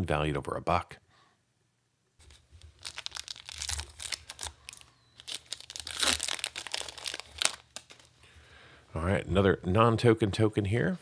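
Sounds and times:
foil wrapper tearing and crinkling: 2.2s - 8.1s.

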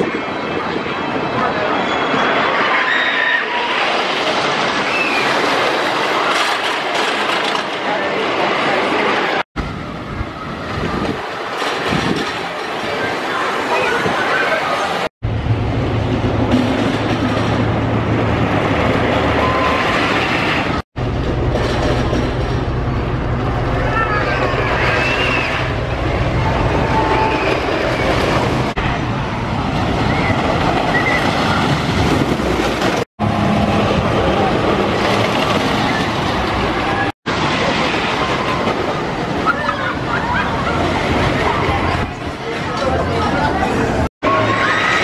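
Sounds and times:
roller coaster rumbling and clattering: 0.0s - 45.0s
people shouting: 23.8s - 28.4s.

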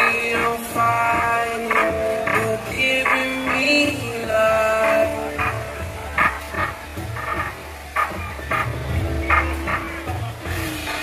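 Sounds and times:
music with deep bass line: 0.0s - 11.0s.

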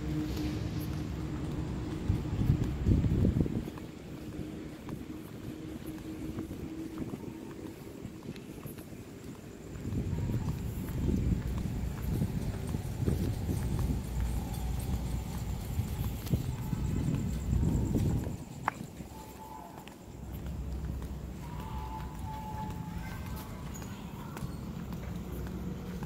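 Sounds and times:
footsteps on pavement: 0.0s - 26.0s.

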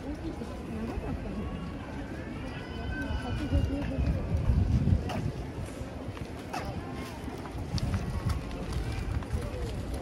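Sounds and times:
faint voices of passers-by: 0.0s - 10.0s
wind buffeting microphone: 0.0s - 10.0s.

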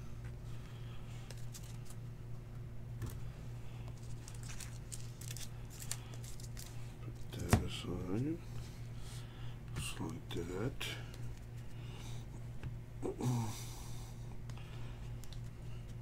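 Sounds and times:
low electrical hum: 0.0s - 16.0s
cards clicking and sliding: 1.2s - 2.0s.

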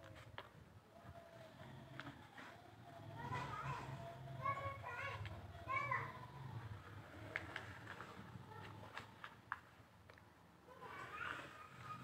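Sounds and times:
children talking and calling: 0.0s - 9.5s, 10.6s - 12.0s.

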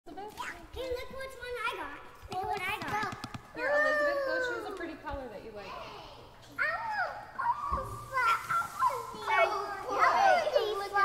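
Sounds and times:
young children chattering: 5.6s - 11.0s.

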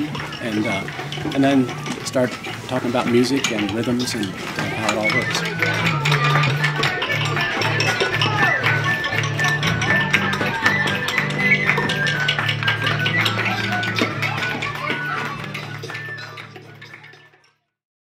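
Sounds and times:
quick percussive clicks and taps: 0.0s - 17.5s.

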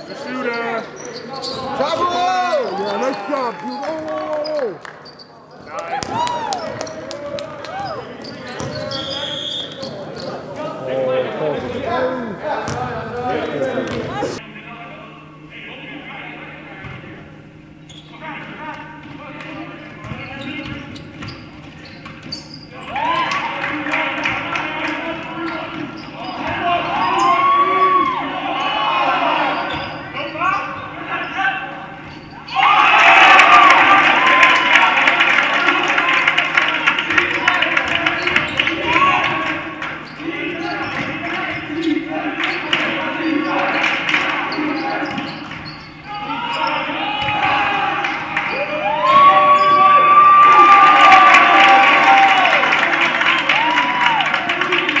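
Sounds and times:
players shouting: 0.0s - 4.8s, 22.7s - 55.0s
shoes squeaking: 0.0s - 10.8s, 16.8s - 23.6s, 24.3s - 32.8s, 37.1s - 50.2s
basketball bouncing on court: 6.0s - 7.0s, 8.2s - 9.1s, 12.7s - 13.2s, 20.0s - 22.6s, 37.1s - 41.7s, 47.2s - 47.7s.

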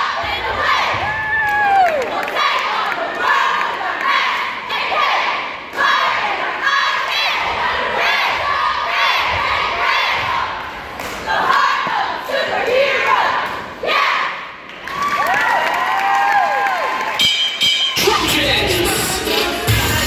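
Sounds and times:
cheerleaders shouting a cheer: 0.0s - 17.2s
crowd noise: 0.0s - 20.0s.

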